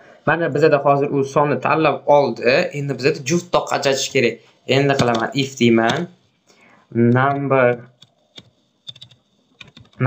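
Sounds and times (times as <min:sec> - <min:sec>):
keyboard typing: 0:04.9 - 0:06.1, 0:07.1 - 0:10.0.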